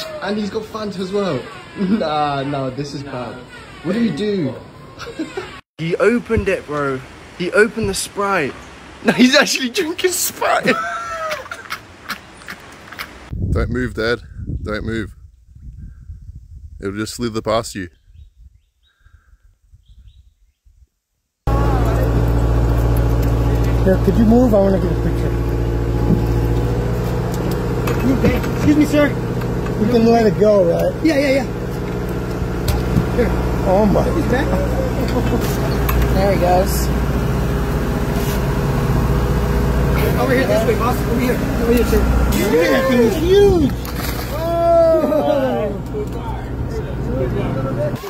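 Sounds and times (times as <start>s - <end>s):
boat engine humming: 0.0s - 7.4s, 21.5s - 48.0s.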